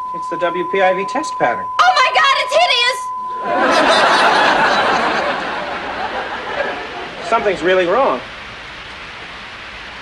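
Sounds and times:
television static hiss: 0:00.0 - 0:10.0.

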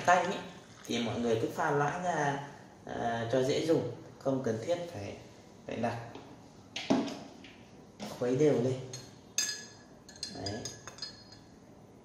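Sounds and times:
teaspoon clinking against glass: 0:08.9 - 0:11.5.

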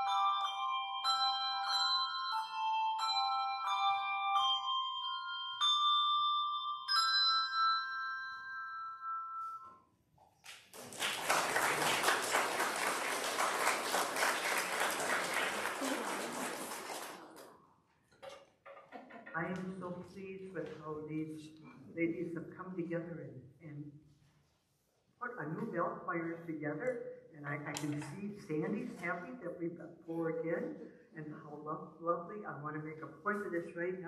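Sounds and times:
handbell choir playing: 0:00.0 - 0:09.7
congregation applauding: 0:10.5 - 0:17.6.

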